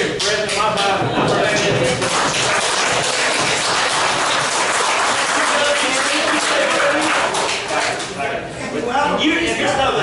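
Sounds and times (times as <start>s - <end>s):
audience applauding: 1.9s - 8.2s.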